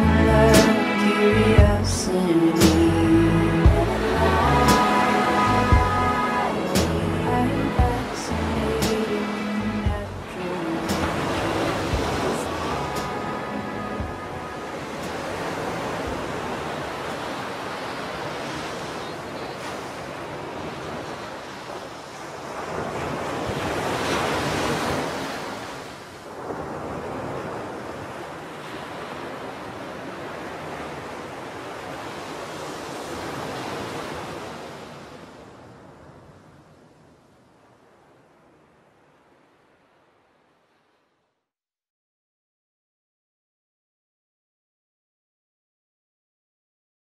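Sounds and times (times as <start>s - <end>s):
waves breaking on a beach: 0.0s - 2.9s, 3.5s - 41.2s
song: 0.0s - 16.6s.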